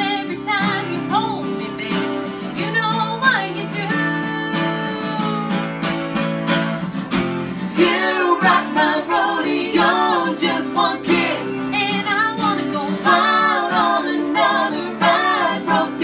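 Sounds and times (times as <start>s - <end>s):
woman singing: 0.0s - 5.7s, 7.8s - 16.0s
strummed acoustic guitars: 0.0s - 16.0s.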